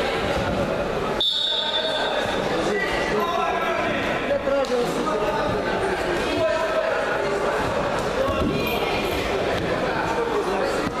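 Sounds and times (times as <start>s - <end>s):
crowd chatter in hall: 0.0s - 11.0s
referee's whistle blast: 1.2s - 2.2s.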